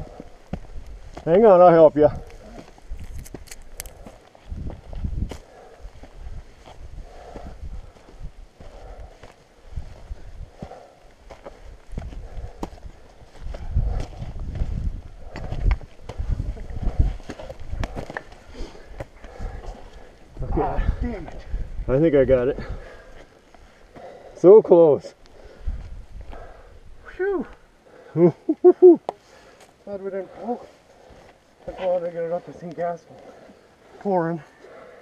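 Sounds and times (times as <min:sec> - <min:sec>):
heavy breathing: 0:02.1 - 0:21.8, 0:22.5 - 0:35.0
footsteps on loose rock: 0:02.3 - 0:09.4, 0:10.0 - 0:19.9.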